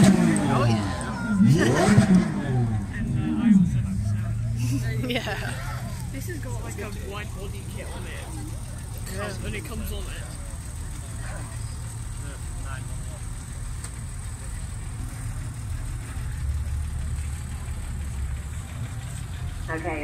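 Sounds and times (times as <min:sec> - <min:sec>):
car engine idling: 0:00.0 - 0:20.0
crowd voices: 0:00.0 - 0:20.0.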